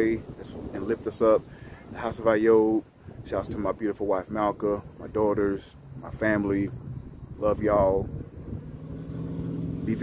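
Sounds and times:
low wind rumble: 0.0s - 10.0s
vehicle engine humming: 5.0s - 10.0s.

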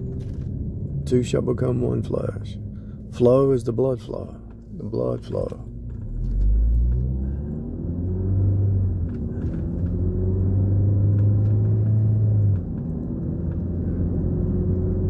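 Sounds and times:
car engine accelerating: 0.0s - 15.0s
road noise inside car: 0.0s - 15.0s.

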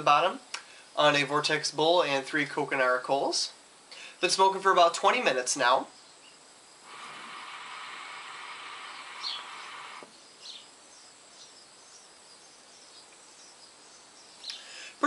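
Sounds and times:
hookah water bubbling: 6.8s - 10.1s
short bird chirps: 7.2s - 10.7s.

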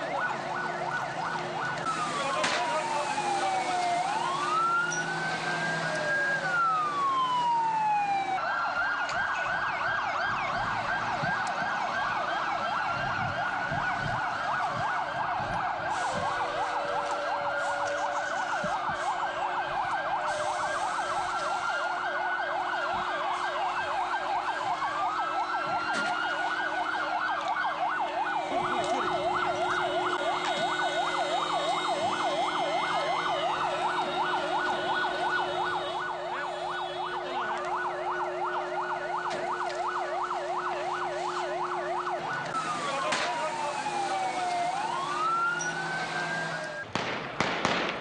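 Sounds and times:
siren wailing: 0.0s - 47.0s
siren yelping: 0.0s - 47.0s.

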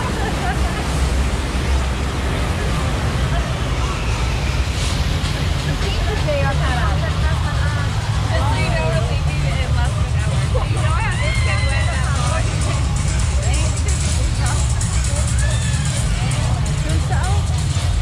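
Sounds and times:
people talking and calling out: 0.0s - 18.0s
water rushing in rapids: 0.0s - 18.0s.

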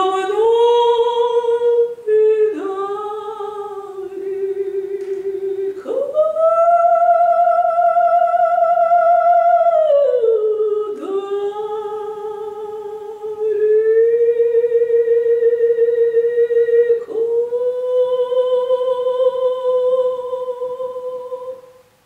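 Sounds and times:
woman singing operatically: 0.0s - 21.8s.

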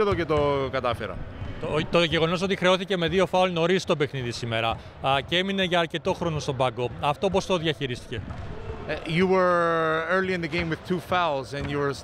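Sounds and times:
basketball bouncing on court: 0.0s - 1.6s, 8.1s - 8.9s
man talking: 0.0s - 8.2s, 8.9s - 12.0s.

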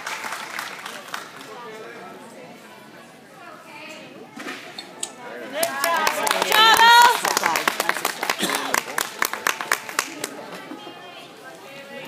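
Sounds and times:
spectators clapping: 0.0s - 1.6s, 5.5s - 10.6s
spectators cheering: 5.5s - 10.2s.

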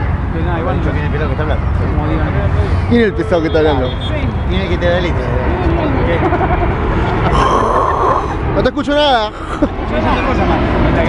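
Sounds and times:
person calling out loudly: 7.3s - 8.4s.

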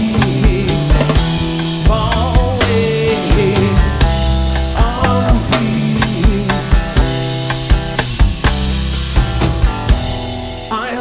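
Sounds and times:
drum kit beating steadily: 0.0s - 11.0s
electric guitar: 0.0s - 11.0s
strummed acoustic guitar: 0.0s - 11.0s.

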